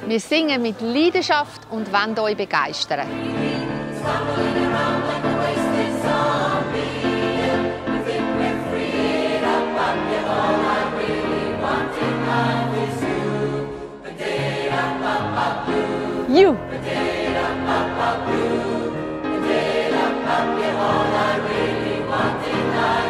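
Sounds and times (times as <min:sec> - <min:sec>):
mixed choir singing: 0:00.0 - 0:23.0.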